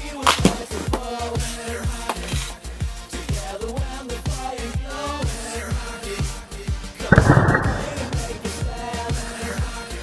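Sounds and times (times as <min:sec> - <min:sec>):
pop song with steady beat: 0:00.0 - 0:10.0
hockey stick slapping ice and puck: 0:00.2 - 0:01.2.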